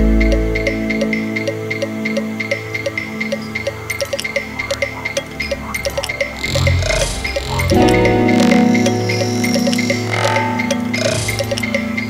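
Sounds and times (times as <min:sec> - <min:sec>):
held synthesizer tones: 0:00.0 - 0:12.0.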